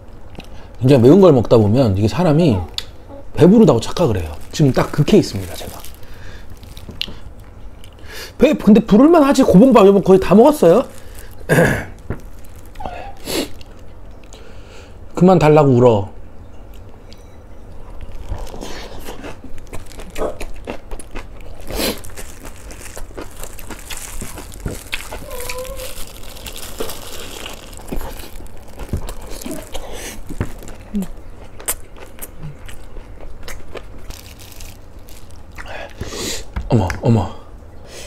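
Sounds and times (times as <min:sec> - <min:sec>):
crunchy chewing: 0:03.8 - 0:08.0, 0:10.2 - 0:14.4, 0:17.8 - 0:36.1.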